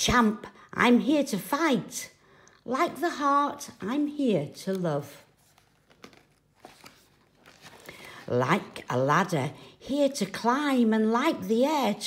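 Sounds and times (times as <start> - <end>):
paper page turning: 4.7 - 8.8.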